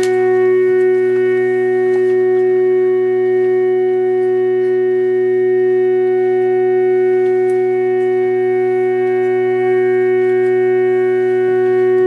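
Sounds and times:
steady electronic drone chord: 0.0s - 12.0s.

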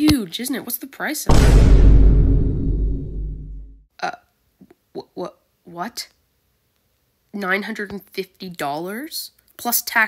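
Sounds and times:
deep booming sound effect: 1.3s - 3.8s.

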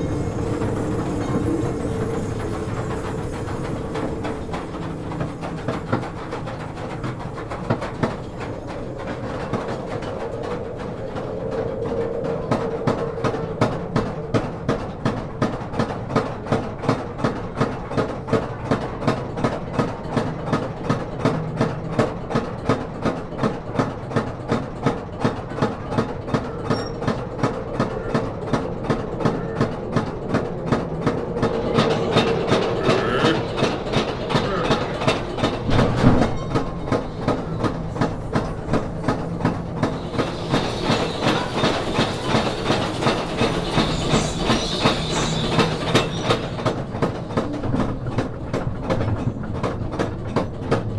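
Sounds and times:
train wheels clacking on rails: 0.0s - 50.9s.

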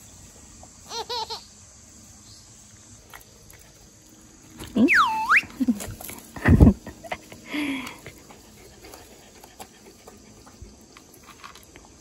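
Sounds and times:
short high-pitched laugh: 0.9s - 1.5s
high whistle-like call: 4.8s - 5.6s.

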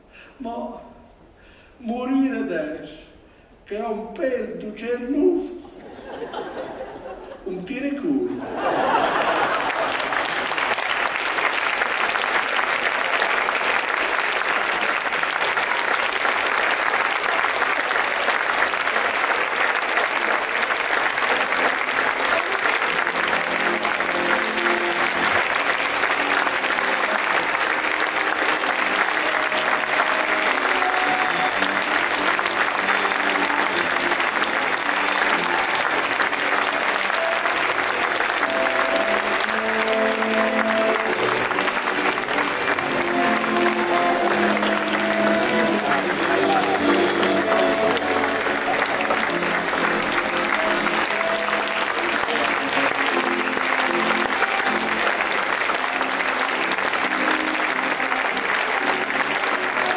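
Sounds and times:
audience applauding: 5.9s - 7.5s, 8.4s - 59.9s
piano accordion sustained notes: 9.6s - 59.9s.

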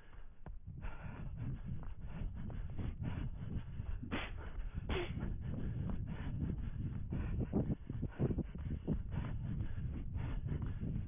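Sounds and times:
low rumble of running movement: 0.0s - 11.0s
runner breathing hard: 0.0s - 11.0s.

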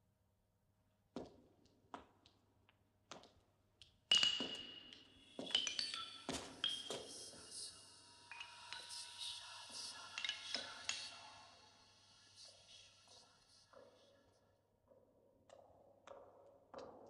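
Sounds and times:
overlapping clinking chimes: 4.1s - 7.6s, 8.3s - 11.1s.

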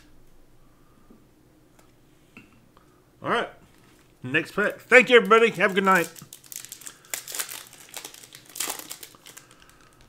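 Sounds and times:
foil wrapper crinkling: 3.7s - 10.0s.

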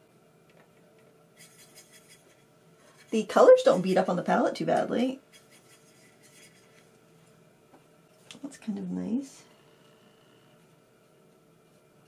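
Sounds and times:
paintbrush scrubbing in palette: 1.4s - 4.0s, 5.3s - 6.9s
person speaking: 3.0s - 5.2s.

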